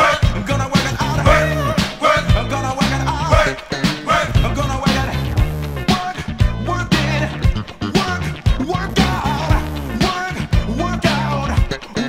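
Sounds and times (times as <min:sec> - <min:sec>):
funk record playing: 0:00.0 - 0:12.0.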